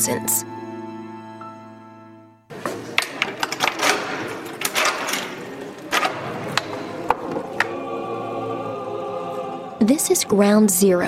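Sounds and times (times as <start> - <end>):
mechanical clicks and clatter: 3.0 - 6.8.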